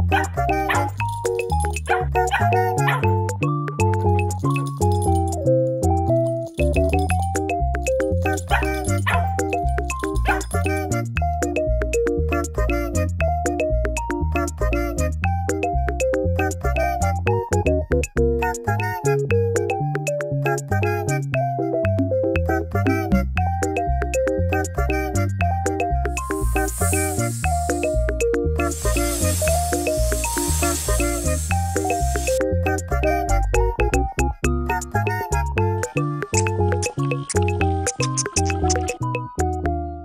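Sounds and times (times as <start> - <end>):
upbeat music with steady beat: 0.0 - 18.7, 21.9 - 39.8
dog barking: 0.1 - 0.9, 1.9 - 3.1, 8.5 - 9.4, 10.2 - 10.5
hissing sound: 26.1 - 32.4.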